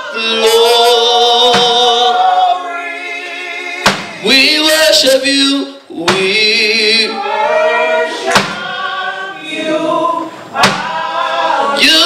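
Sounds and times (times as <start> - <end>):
man singing into microphone: 0.0 - 2.6, 3.8 - 7.2, 11.8 - 12.0
congregation singing: 0.0 - 12.0
sharp knocks: 1.4 - 1.8, 3.8 - 4.1, 6.1 - 6.3, 8.3 - 8.7, 10.6 - 11.0.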